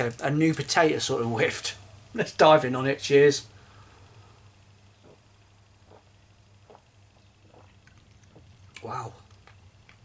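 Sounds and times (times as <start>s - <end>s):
low steady hum: 0.0s - 10.0s
person swallowing gulps: 5.0s - 9.6s.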